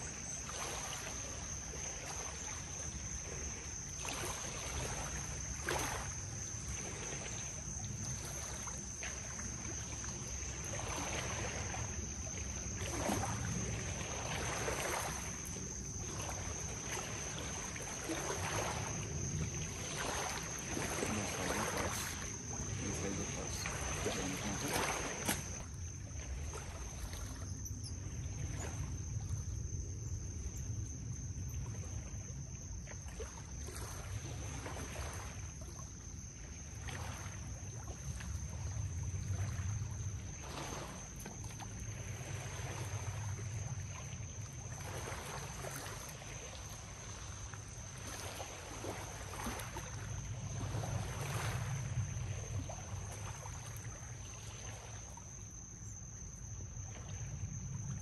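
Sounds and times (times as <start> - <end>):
small waves lapping on rocks: 0.0 - 30.5, 31.7 - 58.0.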